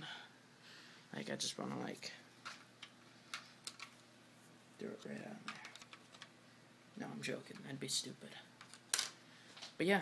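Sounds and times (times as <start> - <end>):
person speaking: 4.8 - 6.0, 6.9 - 8.6.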